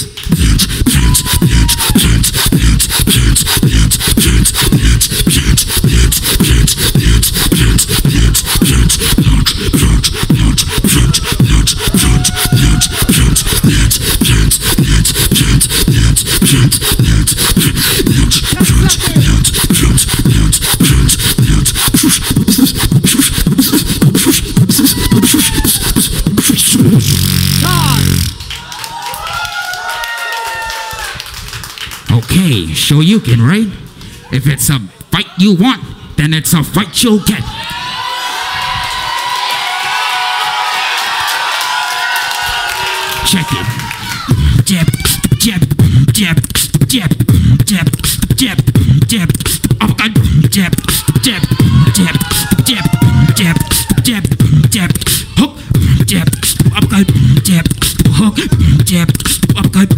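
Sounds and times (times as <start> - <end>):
beatboxing through microphone: 0.0 - 28.6, 30.8 - 37.5, 43.1 - 59.9
audience calling out and whooping: 50.8 - 54.0.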